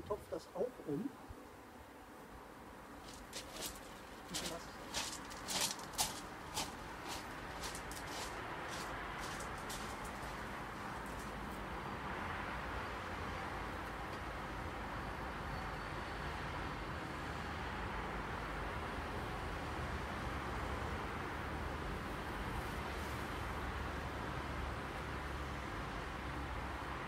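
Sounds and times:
footsteps crunching on gravel: 3.0 - 11.4
steady rushing noise: 3.0 - 11.4.

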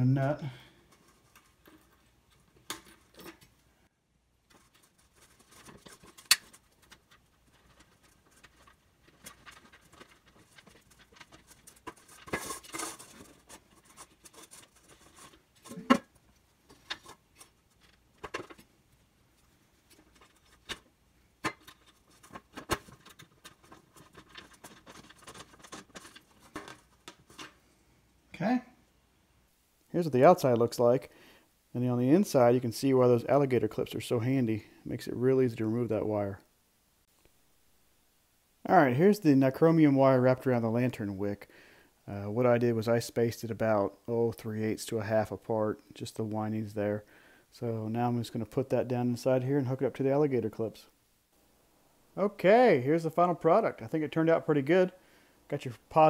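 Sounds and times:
metal parts rattling against can: 4.5 - 16.0.

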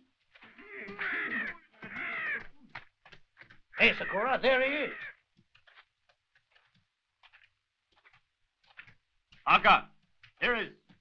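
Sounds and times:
crow cawing: 0.5 - 2.6, 3.8 - 5.2.

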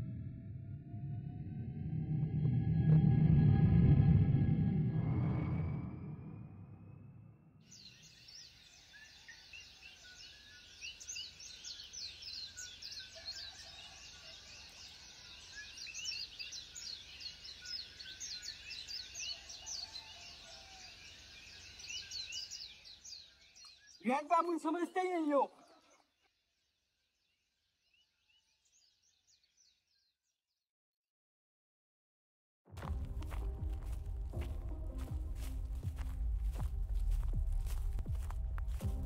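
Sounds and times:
low rumble: 0.0 - 7.5, 32.8 - 39.0
small birds chirping: 7.7 - 30.3.

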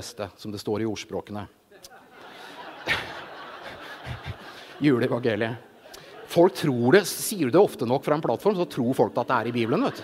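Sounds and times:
audience chuckling: 1.9 - 7.2, 9.0 - 10.0
man speaking: 4.0 - 10.0.

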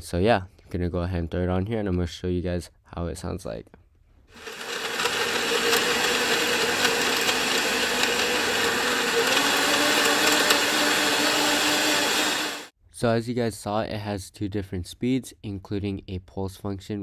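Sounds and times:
blender motor running: 4.3 - 12.7.

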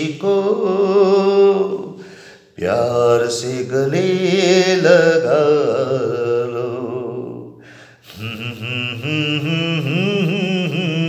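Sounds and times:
man singing solo: 2.6 - 11.0.

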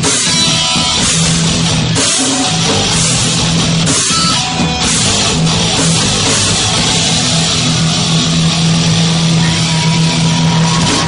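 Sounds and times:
distorted guitars: 0.0 - 11.0
heavy metal band playing live: 0.0 - 11.0.

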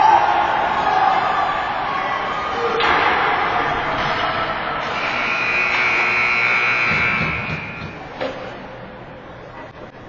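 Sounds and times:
ice rink noise: 0.0 - 10.0.

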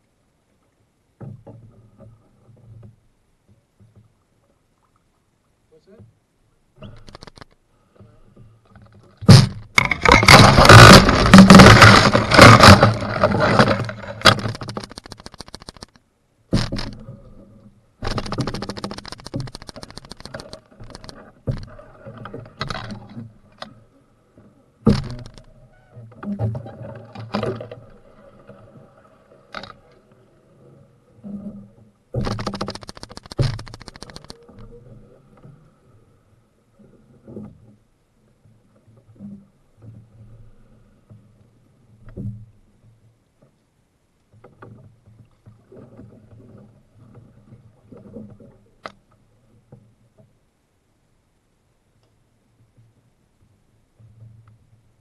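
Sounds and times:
scraping against canoe hull: 8.0 - 14.9
sharp knocks on hull: 9.2 - 14.6.

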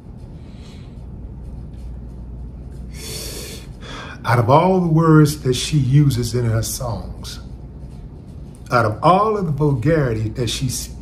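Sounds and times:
steady low hum: 0.0 - 11.0
man breathing in: 2.9 - 4.2.

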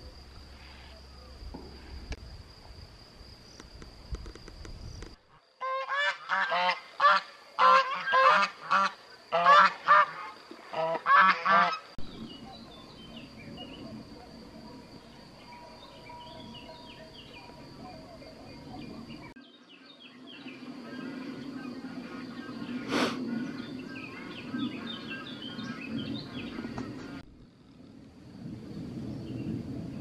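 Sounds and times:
high insect buzz: 0.0 - 29.6
geese honking: 5.6 - 11.9
bird chirps: 12.0 - 27.2.

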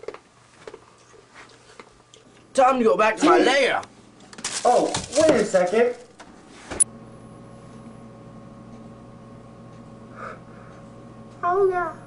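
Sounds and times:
steady tonal hum: 6.5 - 12.0.

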